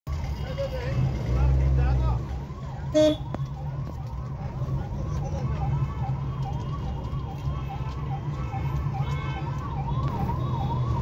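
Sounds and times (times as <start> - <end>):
car engine and road rumble: 0.1 - 11.0
faint street voices: 0.1 - 11.0.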